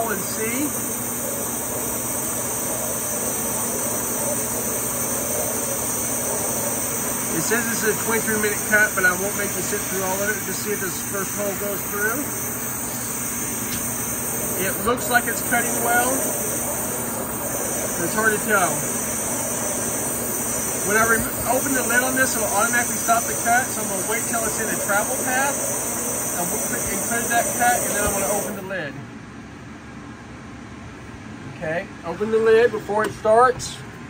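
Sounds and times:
low hum: 0:00.0 - 0:28.6
waterjet cutting hiss: 0:00.0 - 0:28.7.

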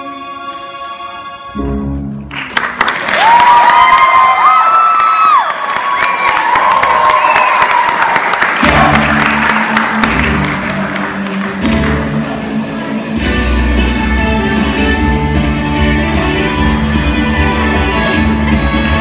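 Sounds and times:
audience applauding: 0:02.3 - 0:12.4
shrill cheers: 0:03.1 - 0:09.1
guitar music: 0:08.7 - 0:19.0.

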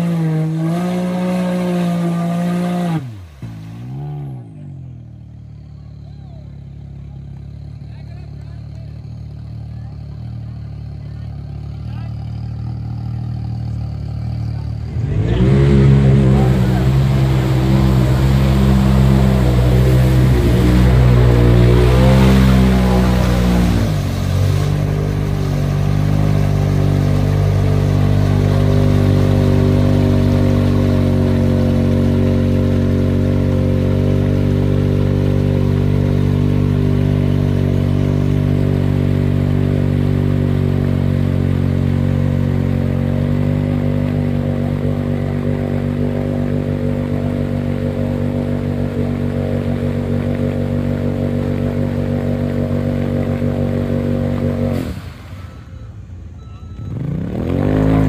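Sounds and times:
engine running loud: 0:00.0 - 0:58.0
tires spinning in mud: 0:00.0 - 0:58.0.

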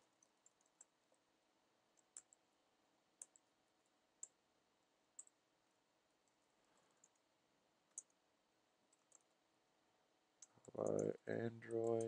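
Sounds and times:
keyboard keys clicking: 0:11.8 - 0:12.0.

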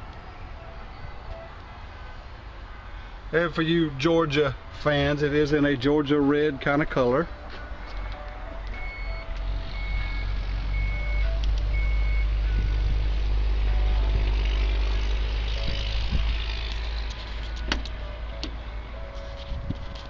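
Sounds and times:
steady low rumble: 0:07.3 - 0:20.0
high beeps: 0:07.9 - 0:12.8.

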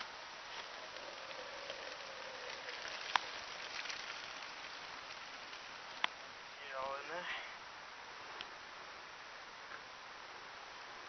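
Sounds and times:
urine trickling into bottle: 0:00.0 - 0:06.0.

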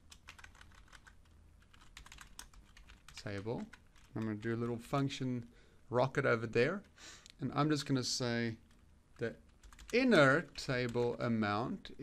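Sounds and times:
keystrokes on computer keyboard: 0:00.1 - 0:04.4, 0:09.5 - 0:10.0.

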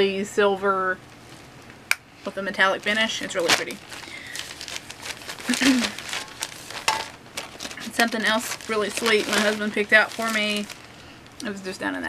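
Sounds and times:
shopping bag crinkling: 0:02.5 - 0:11.6.

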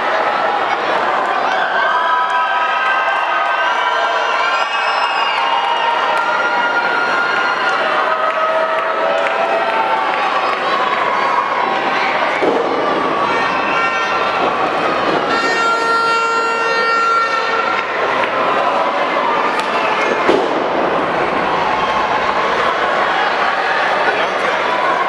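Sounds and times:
crowd shouting and cheering: 0:00.0 - 0:25.0
horn blast: 0:15.2 - 0:18.0.

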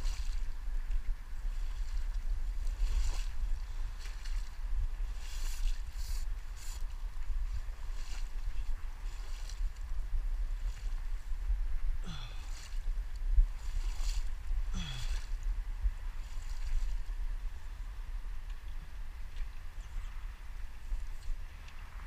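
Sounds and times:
swishing water and wet grass: 0:00.0 - 0:11.3, 0:13.4 - 0:15.4
wind rumbling on microphone: 0:00.0 - 0:22.0.

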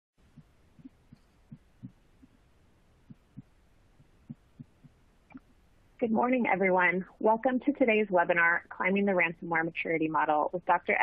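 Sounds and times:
soft low thumps: 0:00.2 - 0:02.4, 0:03.0 - 0:06.9.

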